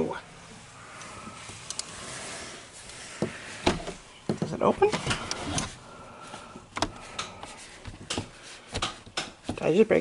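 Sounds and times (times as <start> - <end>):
window rustling: 0.6 - 10.0.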